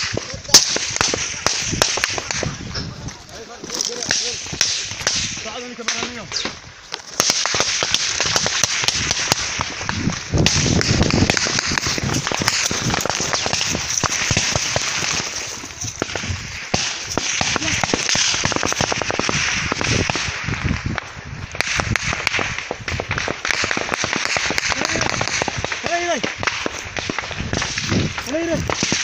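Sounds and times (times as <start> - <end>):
rapid gunshots: 0.0 - 2.8, 3.6 - 29.0.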